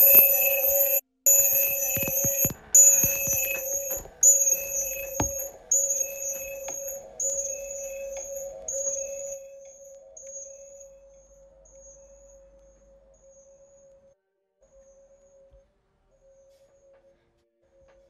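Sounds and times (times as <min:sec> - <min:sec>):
electronic chime tone: 0:00.0 - 0:14.2
knocks: 0:01.3 - 0:07.2.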